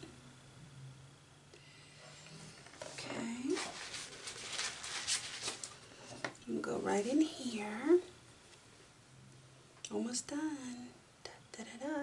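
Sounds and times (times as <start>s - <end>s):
rustling handling noises: 2.6s - 6.4s.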